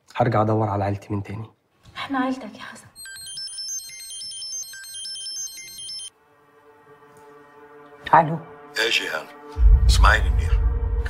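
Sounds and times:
mobile phone ringtone melody: 3.0s - 6.2s.

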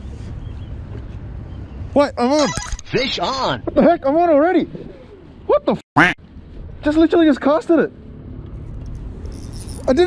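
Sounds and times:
fishing reel whirring: 9.2s - 10.0s.

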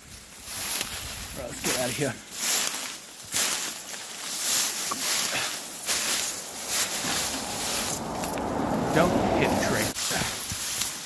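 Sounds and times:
dry grass rustling against clothing: 0.0s - 11.0s.

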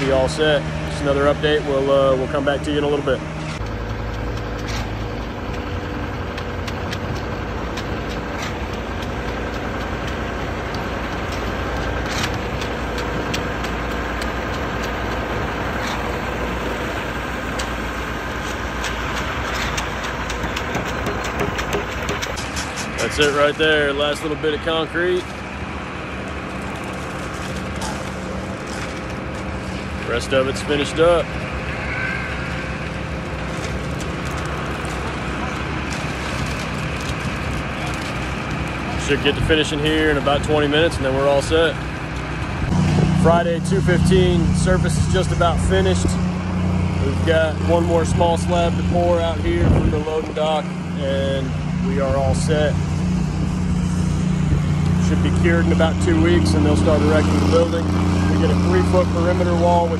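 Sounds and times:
heavy diesel engine running: 0.0s - 59.9s
sharp clicks and knocks: 3.5s - 16.4s, 17.4s - 23.5s.

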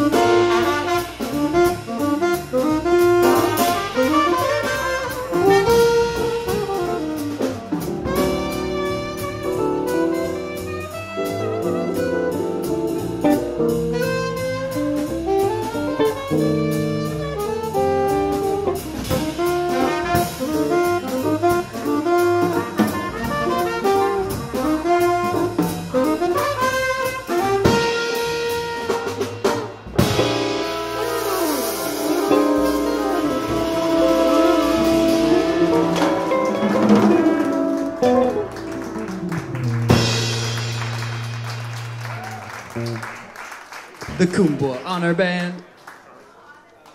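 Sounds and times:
jazz band playing swing: 0.0s - 45.9s.

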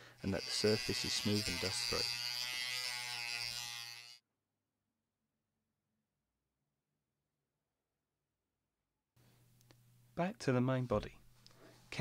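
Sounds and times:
rotary tool sanding plastic: 0.2s - 4.2s.

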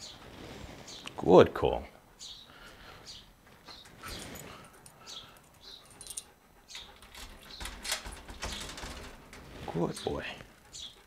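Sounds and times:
keys working a door lock: 4.8s - 9.2s.

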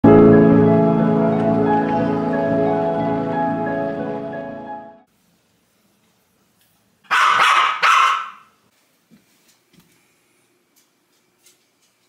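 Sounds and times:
dog barking: 7.1s - 8.5s.

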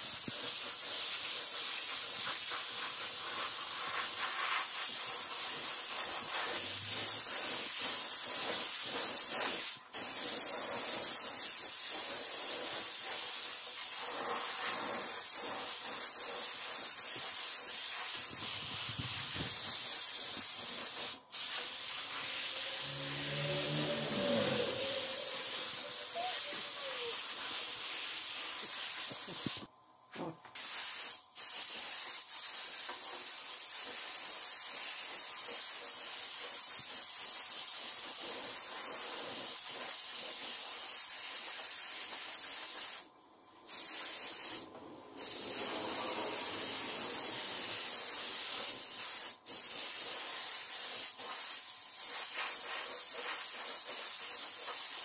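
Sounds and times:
spray gun hissing: 0.0s - 29.7s, 30.6s - 43.1s, 43.7s - 55.0s.

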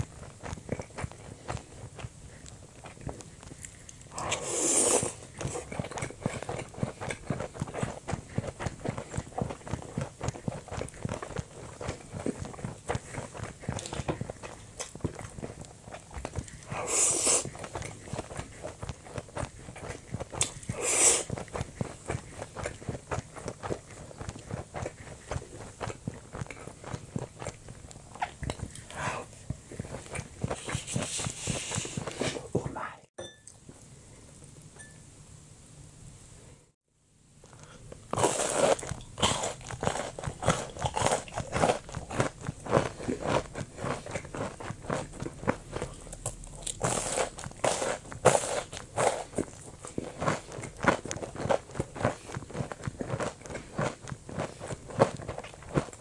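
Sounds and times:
person chewing food: 0.0s - 32.6s, 37.4s - 56.0s
tableware clinking: 33.2s - 33.6s.

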